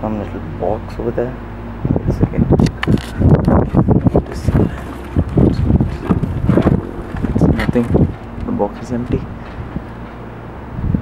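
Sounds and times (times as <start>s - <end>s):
wind buffeting microphone: 1.7s - 11.0s.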